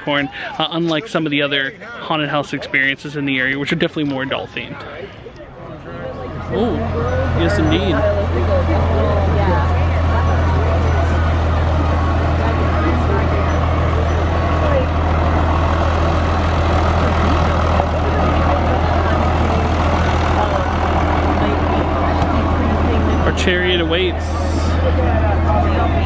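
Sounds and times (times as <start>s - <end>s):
people's voices: 0.0s - 26.0s
tractor engine droning: 4.4s - 26.0s.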